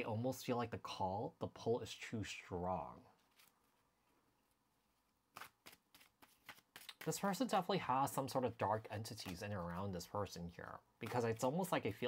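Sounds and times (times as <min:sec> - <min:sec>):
cards being shuffled: 0:03.2 - 0:03.8, 0:05.3 - 0:07.5, 0:08.6 - 0:10.0.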